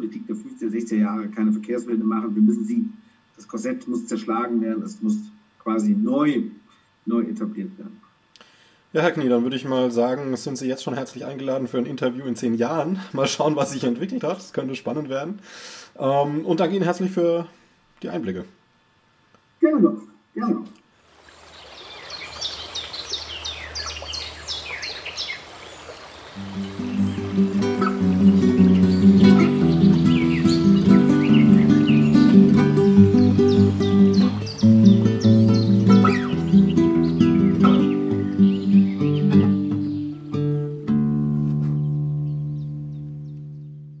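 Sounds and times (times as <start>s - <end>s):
steady low hum: 0.0s - 41.4s
birds chirping: 21.2s - 40.7s, 41.6s - 44.0s
acoustic guitar chord ringing: 26.4s - 44.0s.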